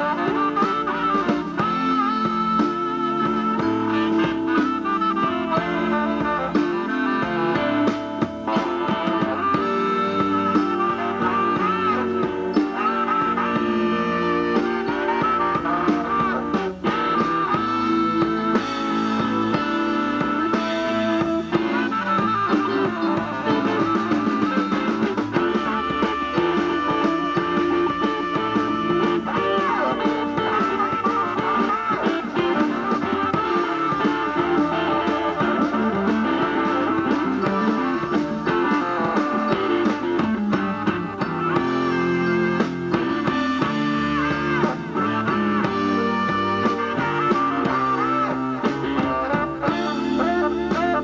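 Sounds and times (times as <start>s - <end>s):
electric guitar: 0.0s - 51.0s
live rock band playing: 0.0s - 51.0s.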